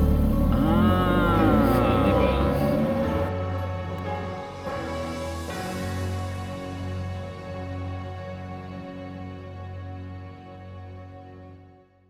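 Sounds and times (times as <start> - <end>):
car engine rumbling and revving: 0.0 - 3.3.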